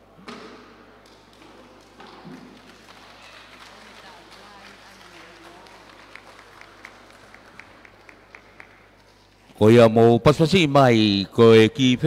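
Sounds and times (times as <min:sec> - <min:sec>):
crowd murmur in a hall: 0:00.8 - 0:09.6
light hand claps: 0:01.0 - 0:09.2.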